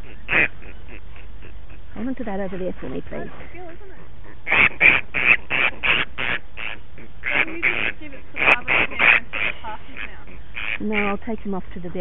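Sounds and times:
bat squawking harshly: 0.0s - 3.2s, 4.2s - 11.4s.

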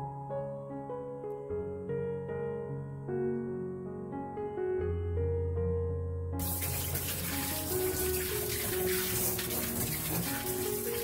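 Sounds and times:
soft piano music: 0.0s - 11.0s
tap water splashing in sink: 6.4s - 11.0s.

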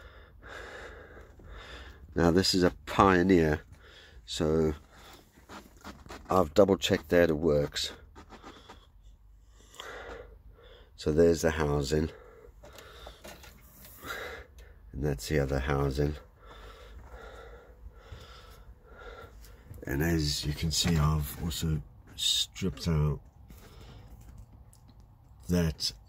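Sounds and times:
person breathing close: 0.0s - 2.1s, 3.7s - 5.4s, 8.3s - 11.0s, 12.1s - 14.9s, 16.2s - 19.8s, 23.5s - 24.3s.

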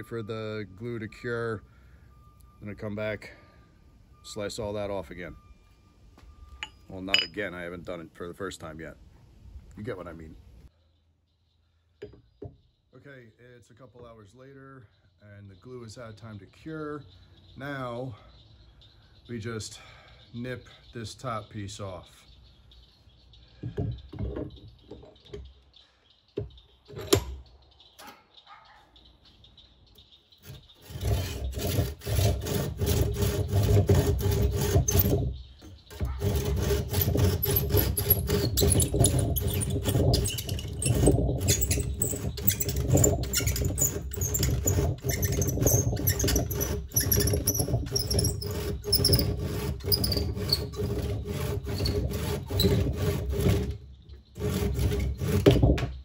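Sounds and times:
hand saw cutting wood: 30.4s - 55.8s.

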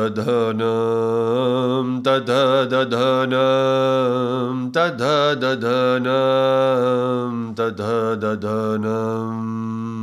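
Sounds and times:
man chanting in a low drone: 0.0s - 10.0s.

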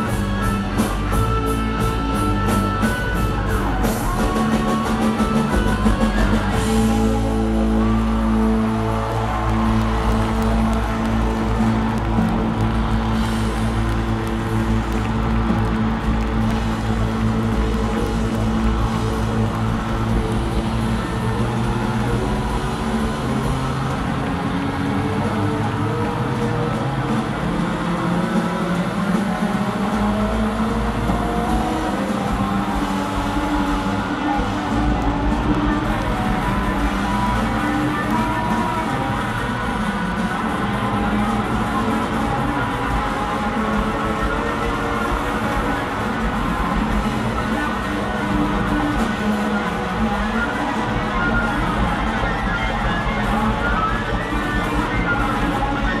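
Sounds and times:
rock band playing live: 0.0s - 56.0s.

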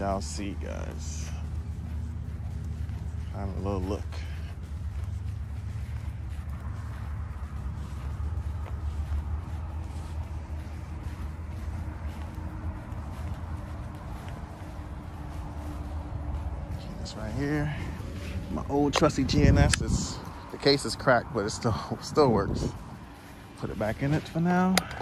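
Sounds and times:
low rumble: 0.0s - 25.0s.

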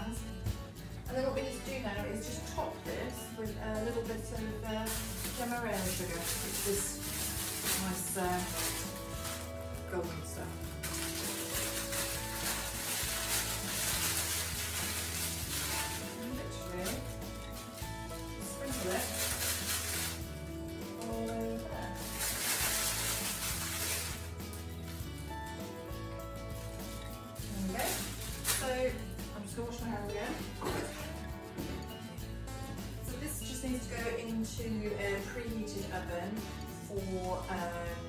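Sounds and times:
background music: 0.0s - 38.0s
sugar sprinkling dry hiss: 4.6s - 29.2s.

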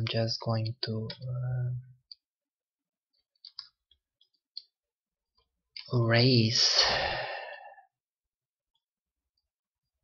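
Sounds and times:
computer mouse clicks: 3.1s - 4.8s.

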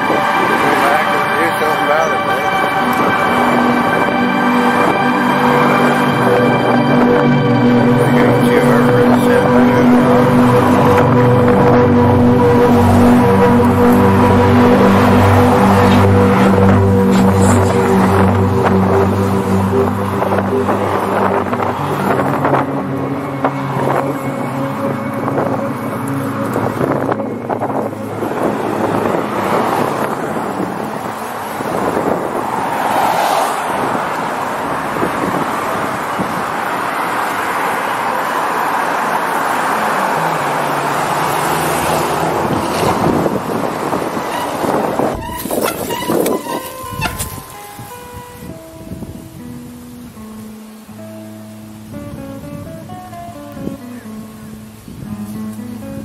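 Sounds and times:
music with held notes: 0.0s - 32.4s, 34.2s - 56.0s
plucked guitar notes: 0.0s - 32.4s, 34.1s - 56.0s
cars passing: 0.0s - 56.0s.

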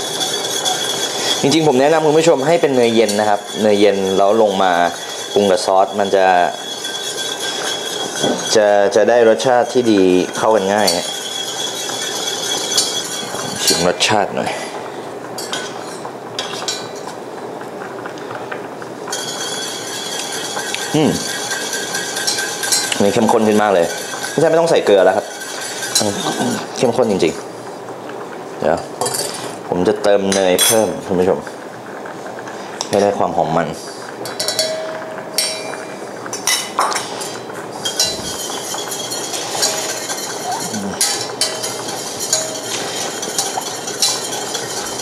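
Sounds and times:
whisk scraping in a metal saucepan: 0.0s - 14.3s, 19.1s - 27.4s, 35.4s - 45.0s.

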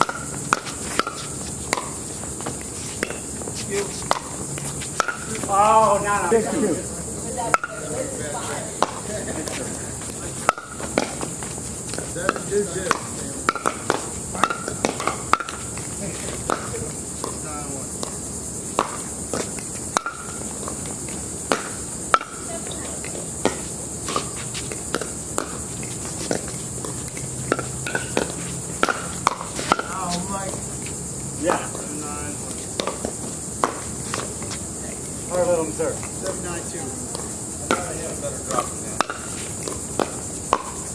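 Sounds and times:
paddles hitting plastic ball: 0.0s - 3.2s, 8.8s - 17.4s, 18.8s - 22.4s, 23.0s - 30.0s, 32.8s - 34.5s, 37.1s - 40.9s
steady high hiss: 0.0s - 40.9s.

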